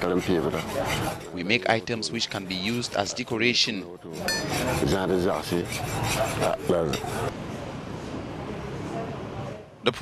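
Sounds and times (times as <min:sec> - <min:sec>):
hand file rasping on metal: 0:00.0 - 0:07.3.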